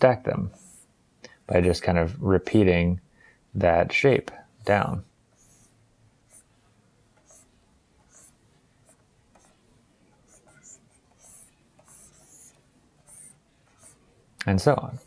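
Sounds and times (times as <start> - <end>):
stylus scratching graphics tablet: 0.4 - 1.8, 5.3 - 15.0.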